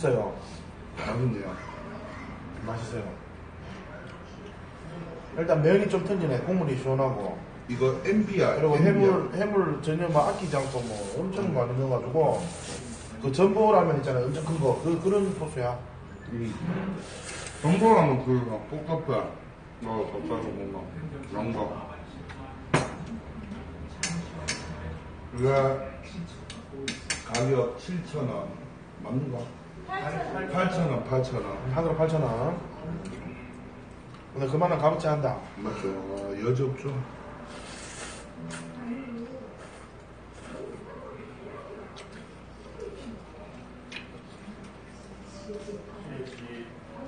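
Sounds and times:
eating sounds at a table: 0:12.3 - 0:13.2, 0:16.6 - 0:17.9, 0:33.0 - 0:34.4, 0:35.8 - 0:45.3, 0:46.1 - 0:46.6.

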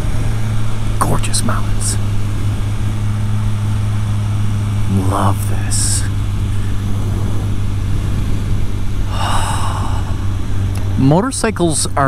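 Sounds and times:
motorcycle engine cruising: 0:00.0 - 0:12.0
wind rushing over microphone: 0:00.0 - 0:12.0.

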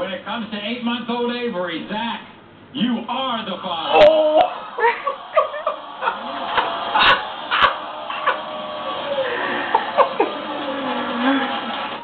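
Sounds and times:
crowd reaction from television: 0:03.2 - 0:12.0.

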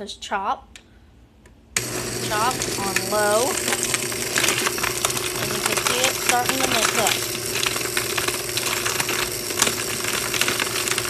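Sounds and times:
blender motor running: 0:01.8 - 0:11.0
ice rattling against blender jar: 0:01.8 - 0:11.0.

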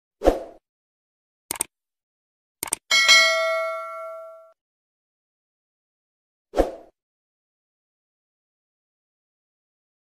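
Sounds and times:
bright bell ding: 0:02.9 - 0:04.6.

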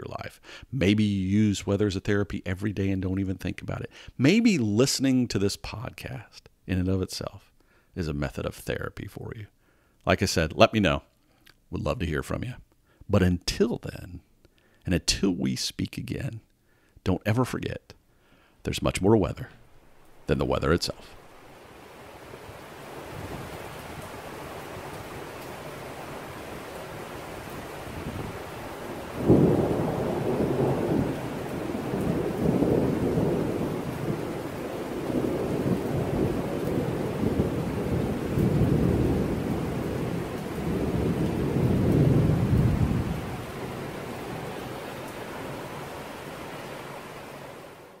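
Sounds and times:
rain hiss: 0:18.4 - 0:48.0
thunderclap rumbling: 0:22.4 - 0:47.6.

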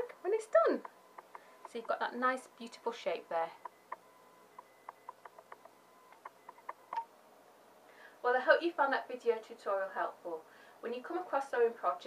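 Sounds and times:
faint steady high tone: 0:00.0 - 0:07.2.

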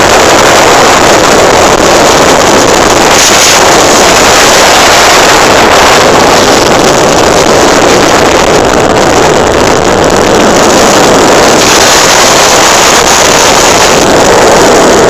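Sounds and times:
motorcycle engine: 0:00.0 - 0:15.0
wind rushing over microphone: 0:00.0 - 0:15.0.

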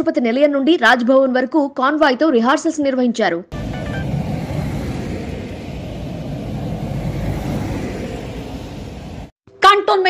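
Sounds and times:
cars driving past: 0:03.6 - 0:09.4.

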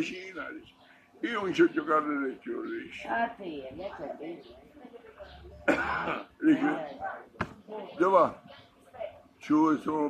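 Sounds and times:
man coughing: 0:05.7 - 0:06.3.

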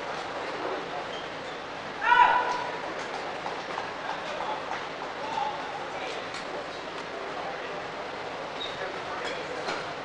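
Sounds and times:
murmur of arena crowd: 0:00.0 - 0:10.0
court shoes squeaking: 0:00.1 - 0:01.7, 0:08.5 - 0:09.3.

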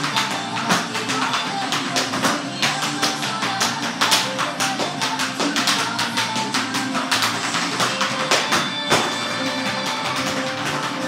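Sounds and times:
fast pop music: 0:00.0 - 0:11.0
tap shoes on wooden floor: 0:00.0 - 0:11.0.

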